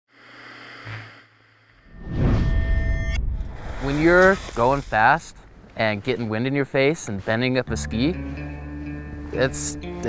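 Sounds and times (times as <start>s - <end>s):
low hum: 0.1s - 6.8s
rising rush of noise: 0.2s - 5.7s.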